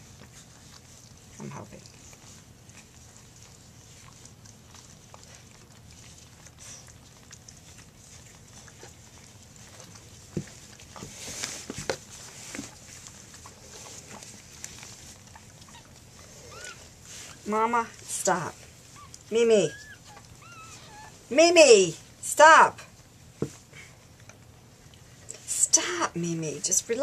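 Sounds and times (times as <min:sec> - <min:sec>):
rustling of paper and fur: 0:00.0 - 0:22.2, 0:22.8 - 0:27.0
soft knocks and scuffs: 0:23.4 - 0:23.7.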